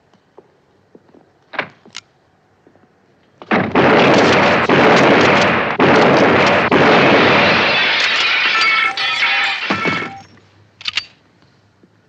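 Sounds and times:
rapid gunfire: 0:03.5 - 0:10.2
glass breaking: 0:06.2 - 0:10.3
glass shards tinkling: 0:07.7 - 0:10.3.

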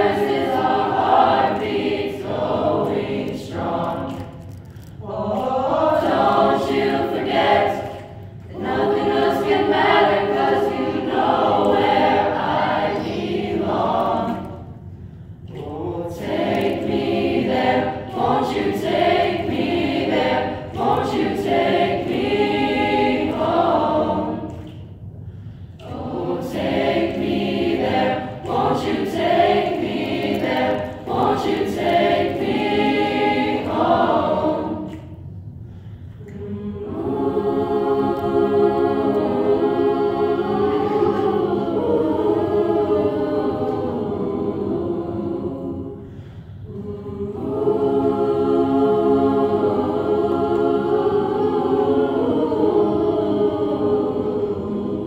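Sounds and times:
choir singing: 0:00.0 - 0:24.9, 0:25.8 - 0:35.2, 0:36.2 - 0:55.0.

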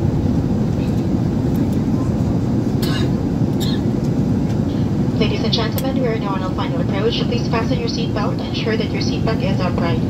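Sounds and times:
jet engines rumbling in cabin: 0:00.0 - 0:10.0
cabin announcement voice: 0:05.1 - 0:10.0.

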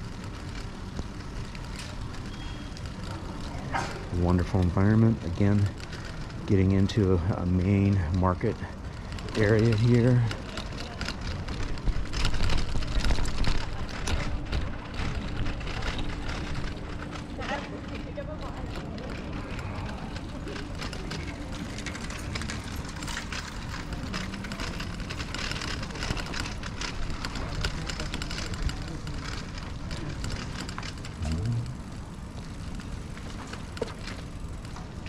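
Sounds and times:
bicycle rattling over cobblestones: 0:00.0 - 0:35.0.

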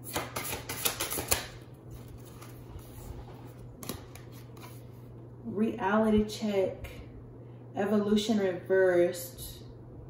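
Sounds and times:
cards being shuffled: 0:00.0 - 0:05.1
low steady hum: 0:00.0 - 0:10.0.

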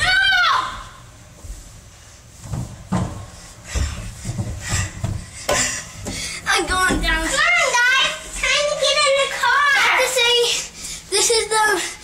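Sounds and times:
knocks and rubbing on plastic: 0:02.4 - 0:07.3.

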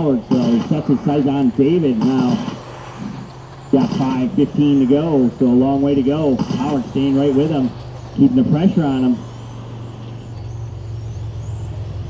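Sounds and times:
high electric motor whines: 0:00.0 - 0:12.0
steady low hum: 0:00.0 - 0:12.0.

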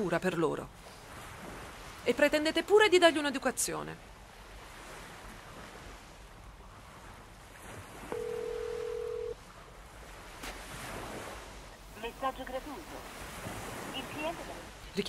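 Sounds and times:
telephone ringback tone: 0:08.1 - 0:09.4
sea surf breaking: 0:10.0 - 0:15.0.

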